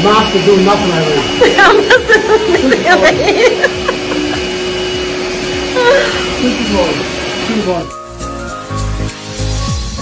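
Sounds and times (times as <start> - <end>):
stand mixer motor humming: 0.0 - 7.8.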